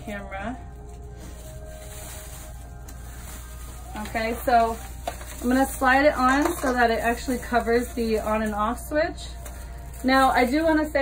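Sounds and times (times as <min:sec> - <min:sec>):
quiet background music: 0:00.0 - 0:11.0
plastic shower cap rustling: 0:00.7 - 0:11.0.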